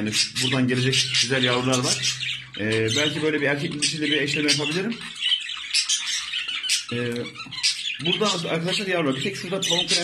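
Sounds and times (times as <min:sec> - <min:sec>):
budgerigars chattering: 0:00.0 - 0:10.0.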